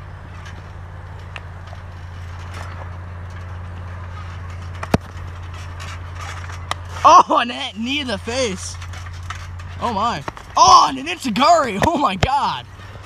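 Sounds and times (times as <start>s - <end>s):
knocks and shuffles on trampoline mat: 0.0s - 13.0s
steady low hum: 0.0s - 13.0s.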